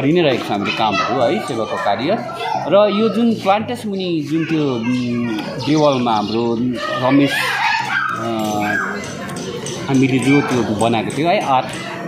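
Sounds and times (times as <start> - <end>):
man speaking: 0.0 - 7.4, 8.2 - 8.9.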